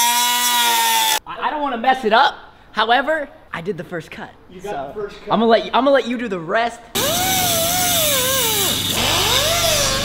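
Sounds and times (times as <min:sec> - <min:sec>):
rotary tool motor whine: 0:07.0 - 0:10.0.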